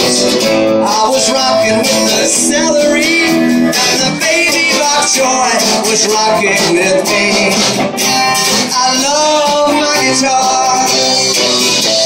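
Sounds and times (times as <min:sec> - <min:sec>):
person singing: 0:00.0 - 0:12.0
strummed acoustic guitar: 0:00.0 - 0:12.0.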